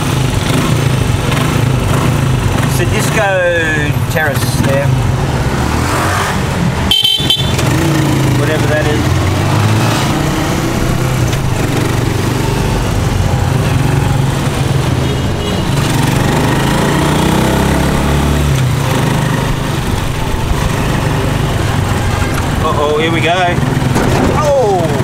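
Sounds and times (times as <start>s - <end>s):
small motorcycle engine: 7.0s - 24.0s.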